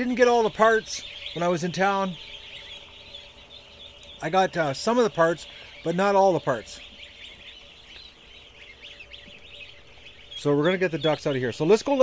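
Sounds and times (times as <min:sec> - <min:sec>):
ducklings peeping: 0:00.0 - 0:12.0.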